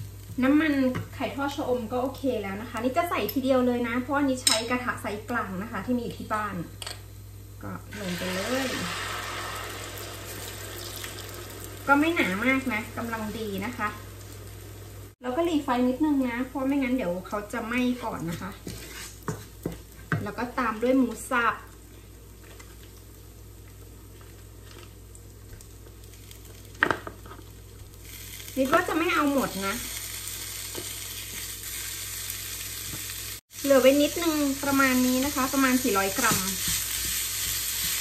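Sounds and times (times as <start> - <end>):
omelette sizzling in hot oil: 7.9 - 20.2, 21.2 - 38.0
wooden spatula scraping pan: 18.0 - 20.1.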